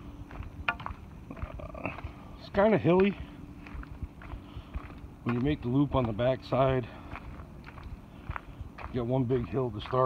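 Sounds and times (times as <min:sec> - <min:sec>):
faint steady hum: 0:00.0 - 0:10.0
footsteps on forest trail: 0:00.0 - 0:10.0.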